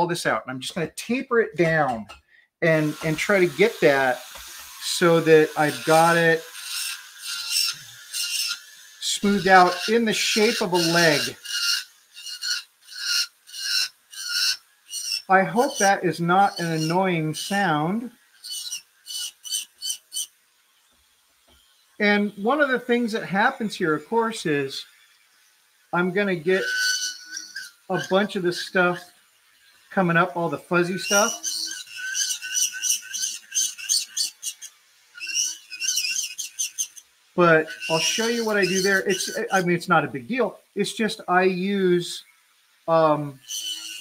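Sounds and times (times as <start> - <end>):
rotary tool grinding plastic: 2.7 - 39.8, 41.7 - 44.0
chisel scraping plastic: 30.9 - 37.0, 37.6 - 39.6.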